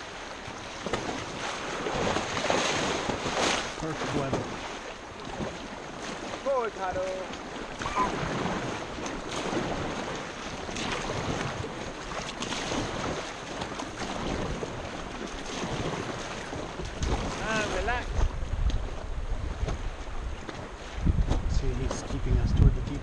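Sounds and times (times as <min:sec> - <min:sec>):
river water rushing: 0:00.0 - 0:21.1
wind buffeting microphone: 0:00.0 - 0:23.0.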